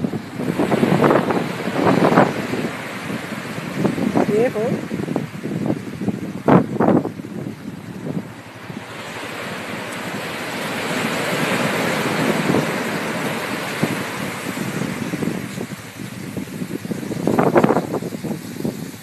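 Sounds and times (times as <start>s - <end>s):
ocean surf washing up beach: 0.0s - 19.0s.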